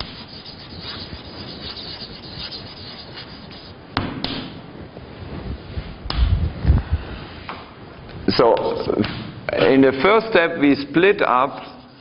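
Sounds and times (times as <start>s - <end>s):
pen scratching on paper: 0.0s - 3.7s, 11.6s - 12.0s.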